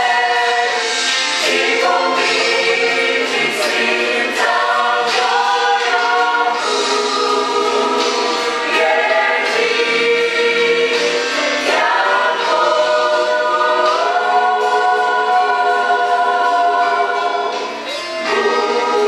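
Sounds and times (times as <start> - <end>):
choir singing gospel: 0.0 - 19.0.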